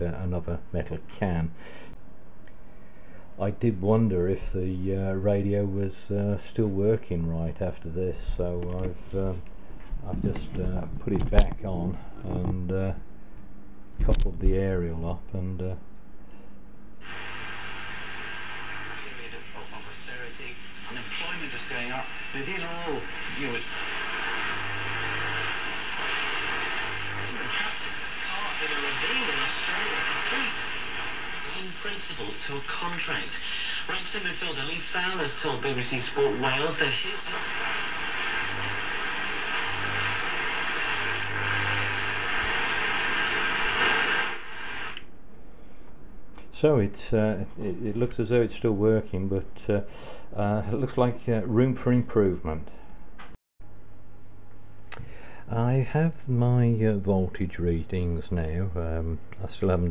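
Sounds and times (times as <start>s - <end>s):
broadcast voice: 10.1s - 13.0s, 19.0s - 24.5s, 27.2s - 37.8s
radio static hiss: 17.0s - 45.1s
faint high whistle: 19.0s - 23.6s.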